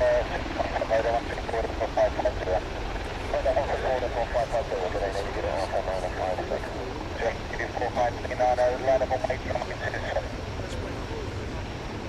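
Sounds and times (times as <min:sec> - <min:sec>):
people talking: 0:00.0 - 0:11.6
jet engines rumbling: 0:00.0 - 0:12.0.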